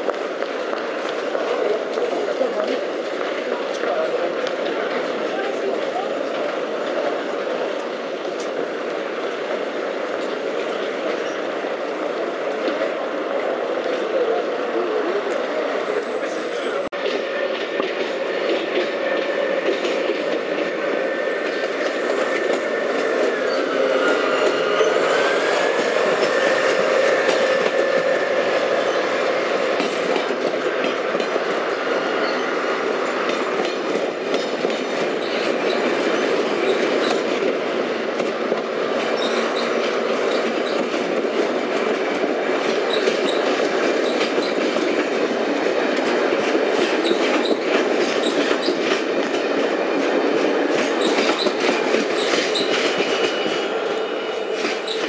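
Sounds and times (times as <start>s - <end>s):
squealing tone: 18.8s - 30.2s.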